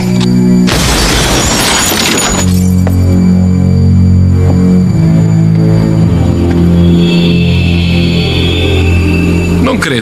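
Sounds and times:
background music: 0.0s - 10.0s
glass shattering: 0.7s - 2.9s.

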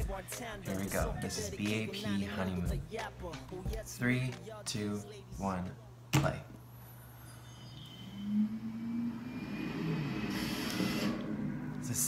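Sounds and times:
low droning tone: 7.3s - 12.0s
low rumble: 8.2s - 12.0s.

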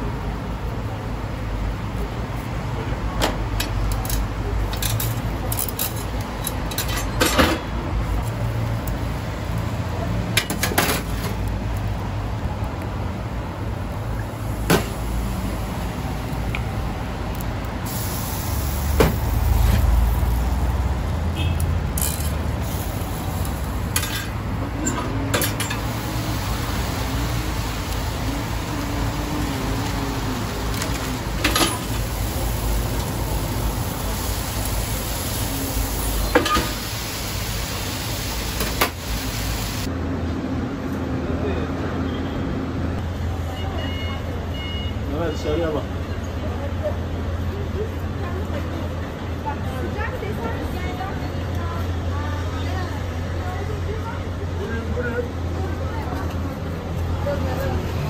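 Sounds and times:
kitchen and street background: 0.0s - 58.0s
metal utensils clinking on grill: 3.6s - 7.6s, 23.9s - 25.9s, 30.7s - 32.0s.

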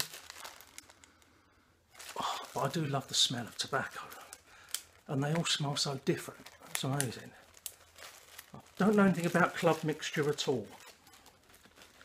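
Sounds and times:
packet crinkling and rustling: 0.0s - 12.0s.

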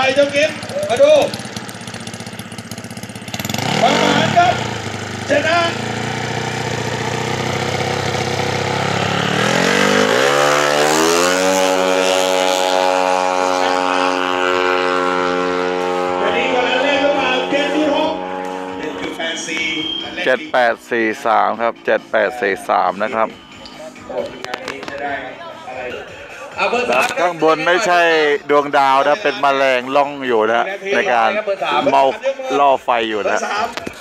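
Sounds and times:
motorcycle engine revving: 0.0s - 32.6s.

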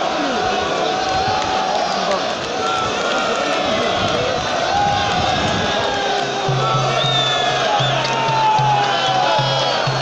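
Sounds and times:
crowd shouting: 0.0s - 10.0s.

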